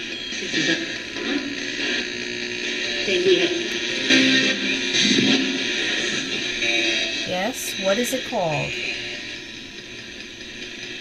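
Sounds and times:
scraps of broadcast sound: 0.0s - 9.0s
radio static hiss: 0.0s - 10.2s.

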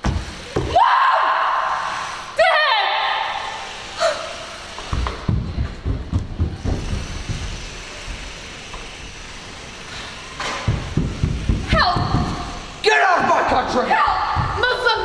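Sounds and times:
bare feet thudding on wooden floor: 4.8s - 7.7s, 10.4s - 12.6s, 14.1s - 15.0s.

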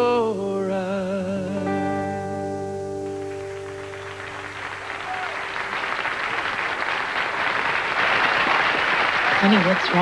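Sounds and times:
audience applause: 3.3s - 10.0s.

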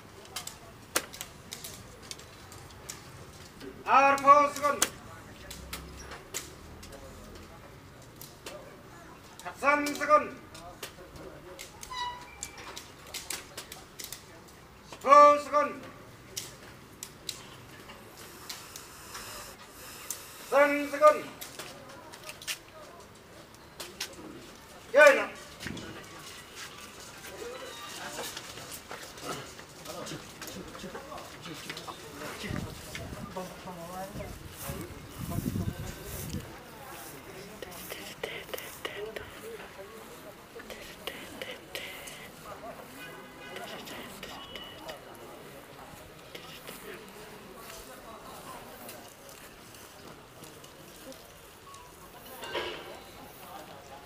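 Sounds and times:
distant people talking: 0.0s - 54.0s
low murmur of voices: 0.0s - 54.0s.

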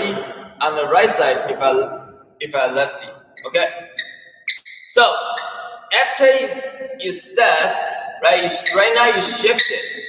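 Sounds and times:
man speaking: 0.0s - 3.7s, 4.9s - 10.0s
shoe squeaking on floor: 3.4s - 5.9s, 8.4s - 10.0s.

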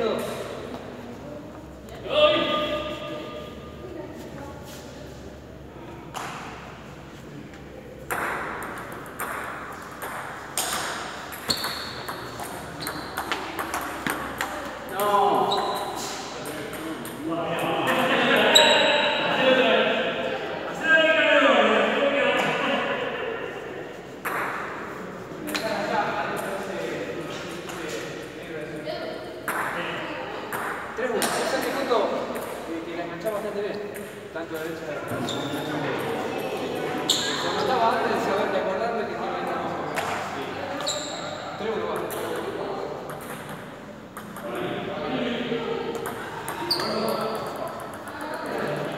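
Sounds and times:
ball bouncing on table: 8.1s - 15.1s, 24.2s - 24.8s, 29.5s - 29.8s, 41.9s - 44.5s
ping pong ball clicking on paddles: 8.1s - 15.2s, 41.9s - 44.6s, 45.9s - 48.5s
voices: 34.0s - 48.9s.

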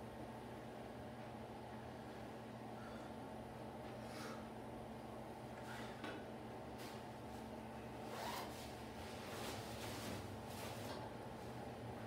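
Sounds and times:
low steady hum: 0.0s - 12.0s
nylon clothing rustling: 8.1s - 11.0s.

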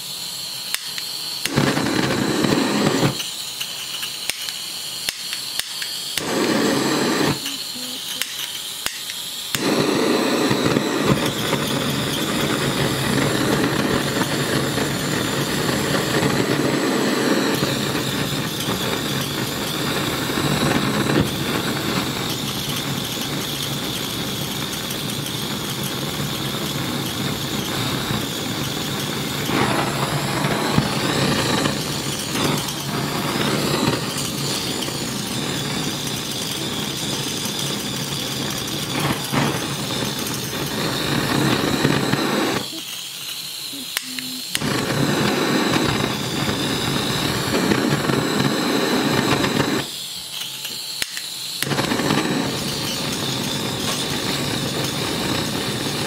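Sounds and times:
faint high whistle: 0.0s - 13.0s, 26.1s - 56.0s
gas burner flame rushing: 0.0s - 56.0s.

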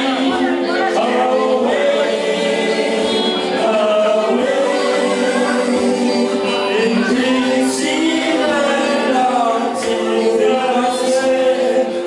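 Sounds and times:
karaoke backing track: 0.0s - 12.0s
men singing karaoke: 0.0s - 12.0s.

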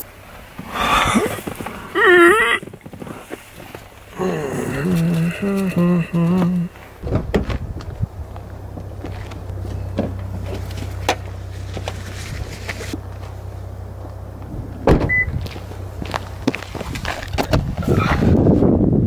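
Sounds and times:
steady low hum: 0.0s - 17.8s
car door shutting with thump: 7.0s - 7.7s, 14.8s - 15.4s.

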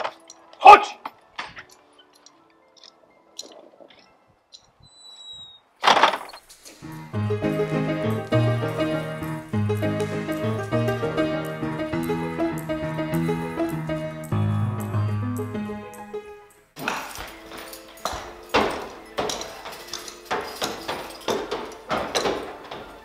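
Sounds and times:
short high squeak: 4.8s - 5.7s
instrumental music with steady beat: 6.8s - 16.8s
heavy wooden door opening: 18.1s - 23.0s.

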